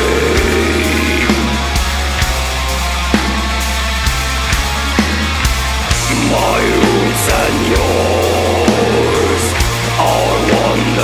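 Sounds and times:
distorted electric guitar metal: 0.0s - 11.0s.

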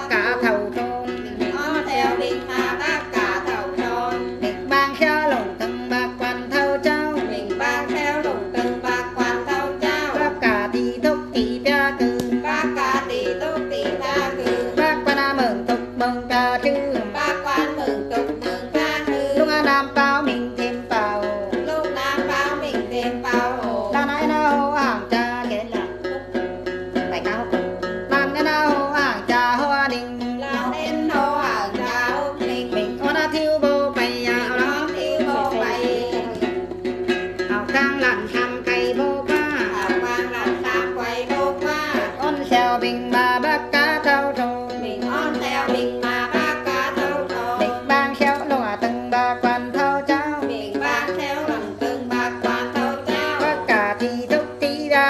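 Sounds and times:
plucked lute: 0.0s - 55.0s
woman singing: 0.0s - 55.0s.

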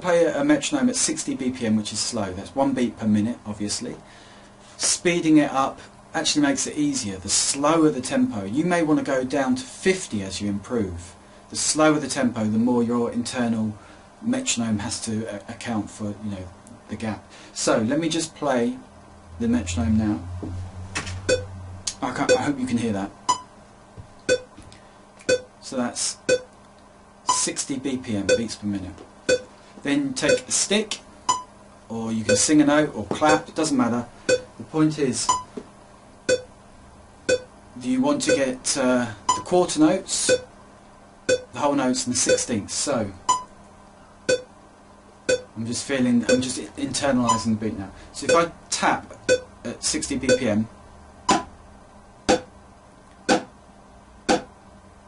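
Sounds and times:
metronome ticking: 21.3s - 21.5s, 24.3s - 24.5s, 26.3s - 26.5s, 28.3s - 28.5s, 29.3s - 29.5s, 30.3s - 30.5s, 32.3s - 32.5s, 34.3s - 34.5s, 36.3s - 36.5s, 37.3s - 37.5s, 38.3s - 38.5s, 39.3s - 39.5s, 41.3s - 41.5s, 42.3s - 42.5s, 45.3s - 45.5s, 46.3s - 46.5s, 47.3s - 47.5s, 48.3s - 48.5s, 49.3s - 49.5s, 50.3s - 50.5s, 52.3s - 52.5s, 53.3s - 53.5s
metronome clicking: 46.3s - 46.5s
drumstick tapping on a book: 54.3s - 54.5s.

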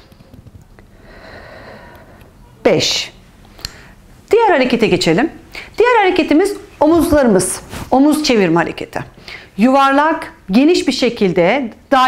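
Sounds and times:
woman breathing in through nose: 0.9s - 2.3s, 9.2s - 9.6s.

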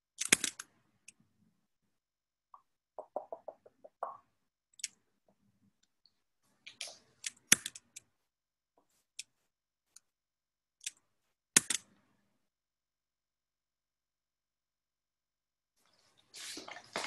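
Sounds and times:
sharp clicks and taps: 2.6s - 5.4s.

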